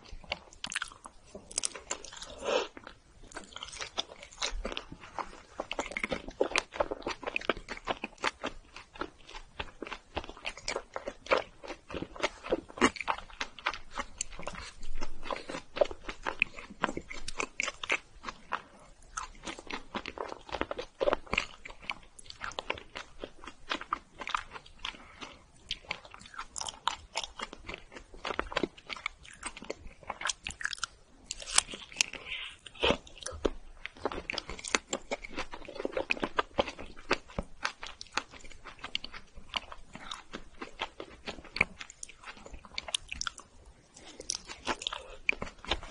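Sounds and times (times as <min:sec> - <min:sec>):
person chewing wetly: 0:00.0 - 0:45.9.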